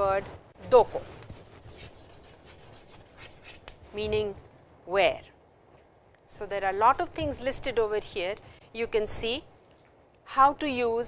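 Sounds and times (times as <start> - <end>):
chalk writing on chalkboard: 1.2 - 3.8.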